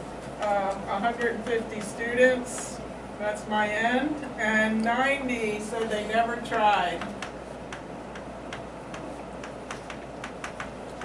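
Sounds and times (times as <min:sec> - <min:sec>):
chalk tapping on chalkboard: 0:07.0 - 0:10.8.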